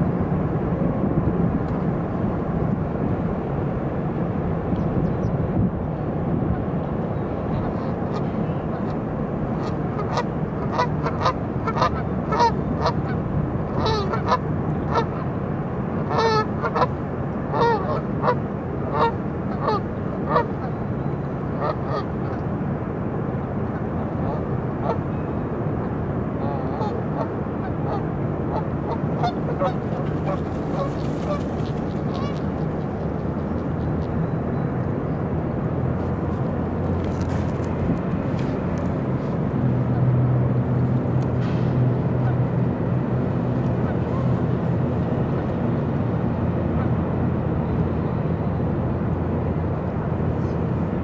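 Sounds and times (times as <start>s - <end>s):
steady low rumble: 0.0s - 51.0s
geese honking: 9.6s - 15.2s, 16.0s - 16.9s, 17.5s - 20.7s, 21.6s - 22.4s, 26.4s - 34.0s.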